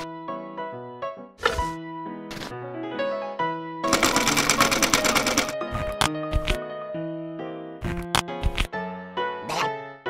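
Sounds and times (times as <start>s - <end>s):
light background music: 0.0s - 10.0s
sewing machine stitching: 3.9s - 6.6s.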